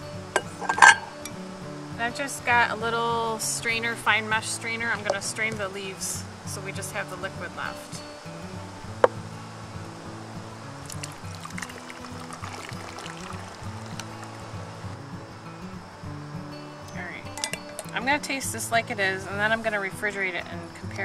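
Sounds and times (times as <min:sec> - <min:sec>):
tea pouring through strainer: 0:10.8 - 0:15.0.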